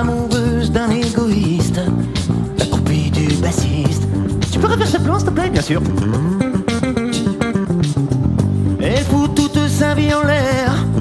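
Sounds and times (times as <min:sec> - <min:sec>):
electric bass guitar lick: 0:00.0 - 0:11.0.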